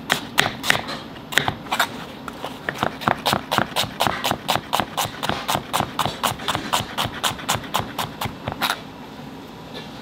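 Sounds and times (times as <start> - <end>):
knife slicing onion on board: 0.0 - 8.8.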